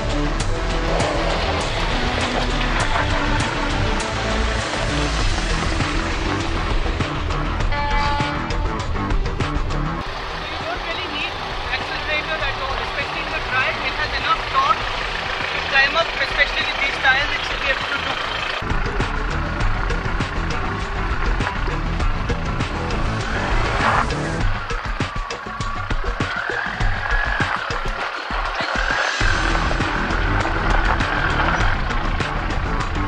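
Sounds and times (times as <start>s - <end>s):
suv engine running at low speed: 0.0s - 33.0s
people's voices: 10.1s - 18.8s.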